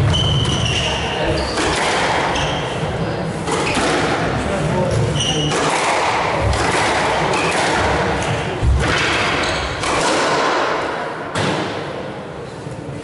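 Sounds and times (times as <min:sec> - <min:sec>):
court shoes squeaking: 0:00.0 - 0:10.2
squash ball cracking off rackets: 0:05.4 - 0:11.9.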